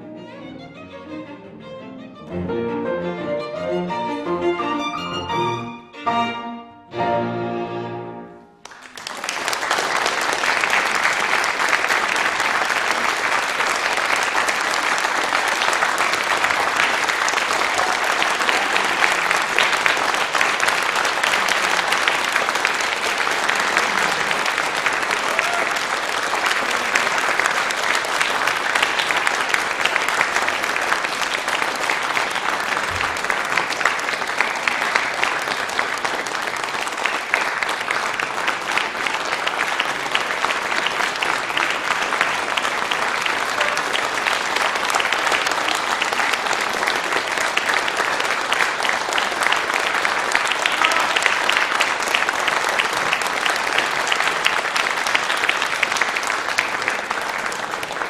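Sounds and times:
audience applause: 8.6s - 58.0s.

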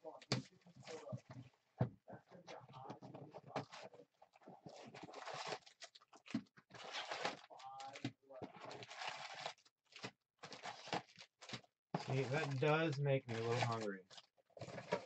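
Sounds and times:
plastic wrap crinkling: 8.6s - 15.0s
cardboard tearing: 8.7s - 12.7s.

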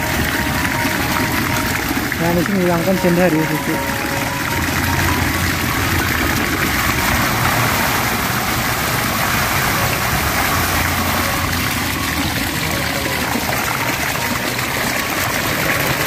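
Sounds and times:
water gushing and splashing: 0.0s - 16.0s.

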